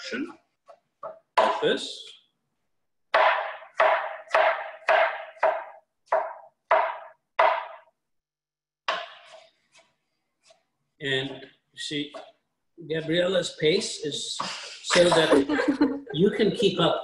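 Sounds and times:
knife chopping on wooden board: 0.6s - 1.8s, 3.1s - 7.9s, 8.9s - 10.6s.

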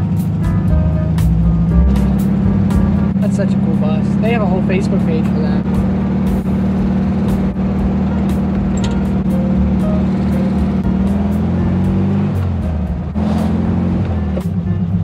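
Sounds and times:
car engine running while driving: 0.0s - 15.0s.

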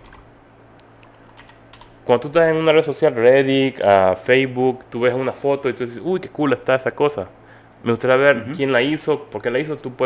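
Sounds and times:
keyboard typing clicks: 0.9s - 2.0s.

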